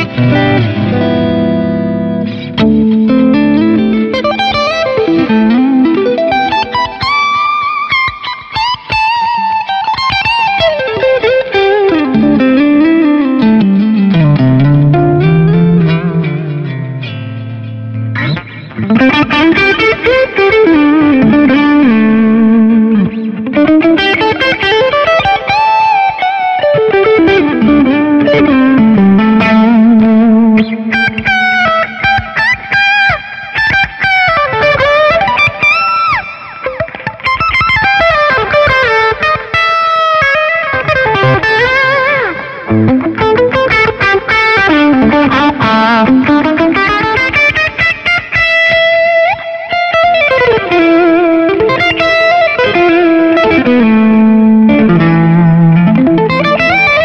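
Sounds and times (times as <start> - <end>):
electric guitar lead lines: 0.0 - 57.0.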